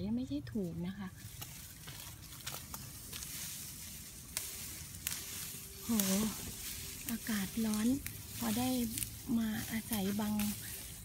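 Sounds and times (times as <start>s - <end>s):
leaves rustling against microphone: 0.6s - 11.0s.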